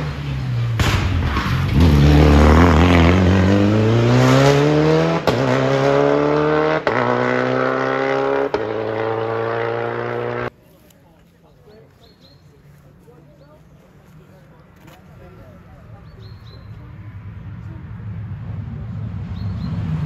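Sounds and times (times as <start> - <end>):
rally car engine at full throttle: 0.0 - 10.5, 16.6 - 20.0.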